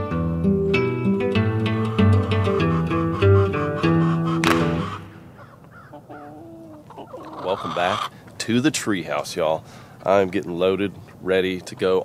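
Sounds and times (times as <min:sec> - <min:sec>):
chickens calling softly: 0:01.7 - 0:08.4.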